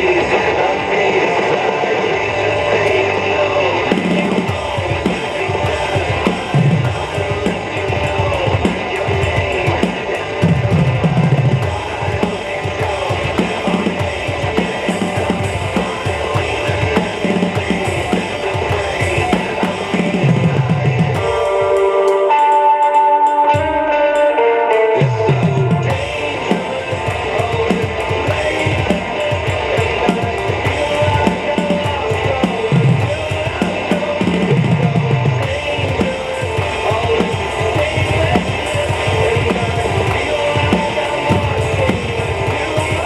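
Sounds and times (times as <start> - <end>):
drum kit with cymbals: 0.0 - 43.0
recorded hard rock song: 0.0 - 43.0.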